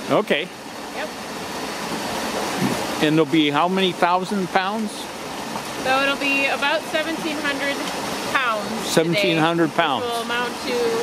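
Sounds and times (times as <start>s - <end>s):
water rushing: 0.0s - 11.0s.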